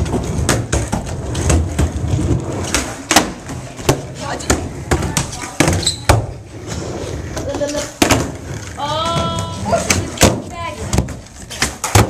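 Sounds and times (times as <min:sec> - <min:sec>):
skateboard decks clacking: 0:00.0 - 0:12.0
skateboard wheels rolling: 0:00.0 - 0:12.0.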